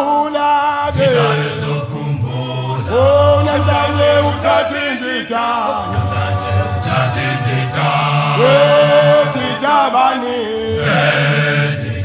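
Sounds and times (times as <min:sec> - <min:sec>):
male choir singing in harmony: 0:00.4 - 0:12.0.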